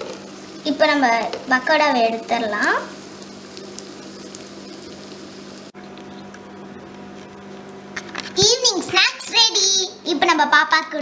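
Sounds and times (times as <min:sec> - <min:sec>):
hot oil sizzling: 0:00.0 - 0:07.2
low steady hum: 0:00.0 - 0:11.0.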